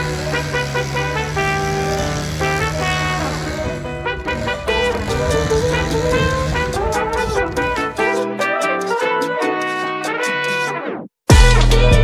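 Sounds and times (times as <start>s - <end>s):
background music melody: 0.0s - 12.0s.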